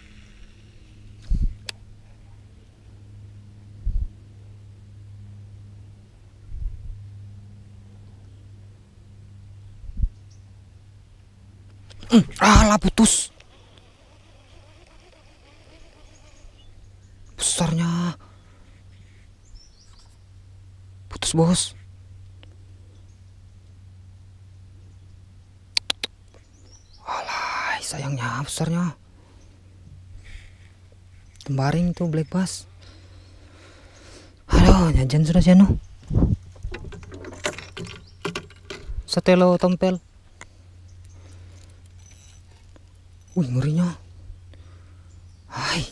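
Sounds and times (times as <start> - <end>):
faint low river rumble: 0.0 - 45.9
steady low hum: 0.0 - 45.9
fishing tackle clicks and rattles: 36.6 - 39.0
faint high chirps: 40.9 - 42.5.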